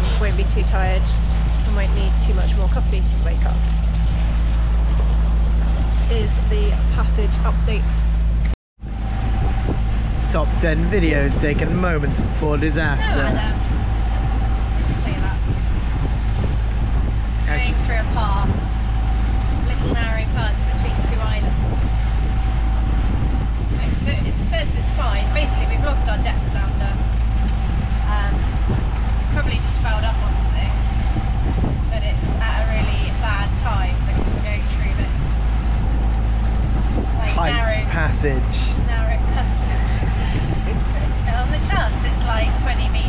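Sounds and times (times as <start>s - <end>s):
boat engine droning: 0.0s - 43.0s.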